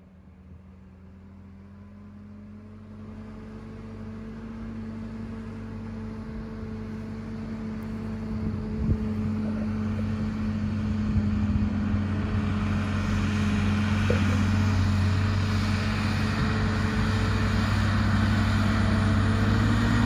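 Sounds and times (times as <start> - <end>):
tractor diesel engine running: 0.0 - 20.0.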